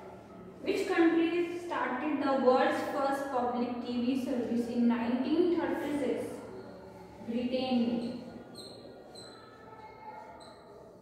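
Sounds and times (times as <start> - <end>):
whiteboard marker squeaking: 7.8 - 11.0.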